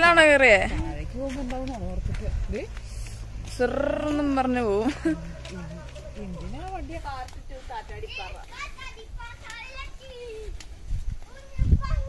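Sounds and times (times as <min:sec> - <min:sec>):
children chattering: 0:03.3 - 0:12.0.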